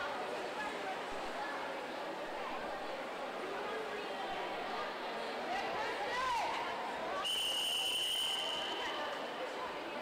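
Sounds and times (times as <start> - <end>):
crowd chatter: 0.0 - 10.0
referee's whistle long blast: 7.2 - 8.9.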